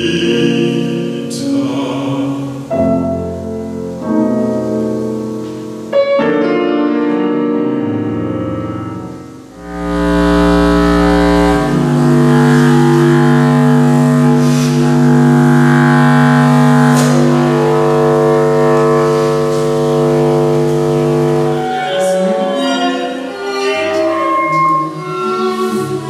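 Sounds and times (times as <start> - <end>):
contrabass clarinet low notes: 5.4 - 26.0.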